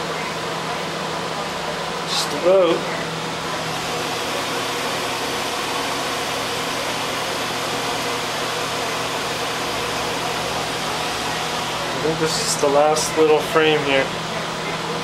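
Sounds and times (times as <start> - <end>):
cooling fans rushing: 0.0 - 15.0.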